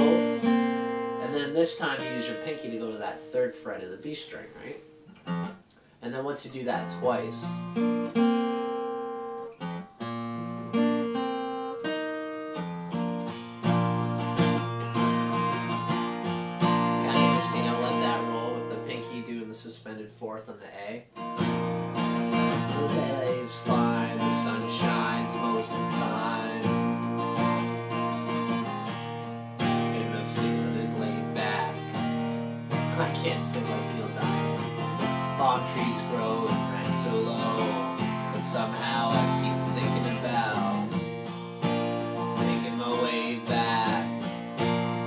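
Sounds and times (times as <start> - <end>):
acoustic guitar picked and strummed: 0.0 - 45.0.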